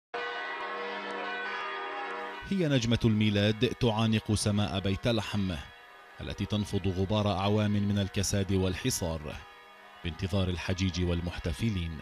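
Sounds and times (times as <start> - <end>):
church bells ringing: 0.2 - 11.4.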